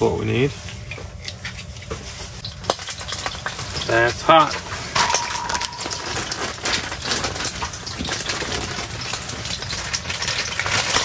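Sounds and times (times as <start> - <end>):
wood fire in stove: 0.0 - 11.0
oil crackling in frying pan: 1.2 - 11.0
brief high ring: 5.0 - 6.4.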